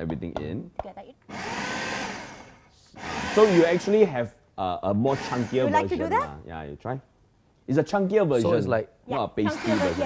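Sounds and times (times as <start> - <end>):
food processor motor chopping: 1.3 - 3.8, 5.1 - 5.7, 9.5 - 10.0.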